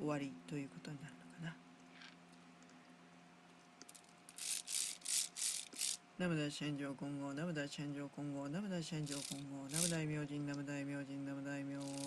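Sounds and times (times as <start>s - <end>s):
low steady hum: 0.0s - 12.0s
rhythmic rattling: 4.3s - 6.0s, 9.0s - 10.0s, 11.8s - 12.0s.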